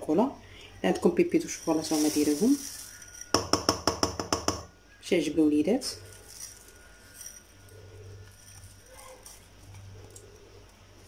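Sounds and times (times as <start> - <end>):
low steady hum: 0.0 - 11.0
spatula folding cream in glass bowl: 6.0 - 10.3.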